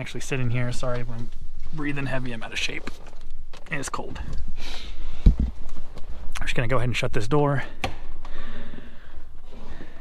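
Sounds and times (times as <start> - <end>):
heavy breathing: 4.5 - 5.5, 8.0 - 10.0.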